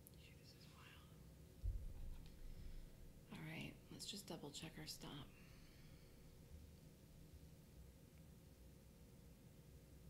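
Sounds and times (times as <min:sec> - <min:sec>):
dull low thump: 0:01.6 - 0:03.3.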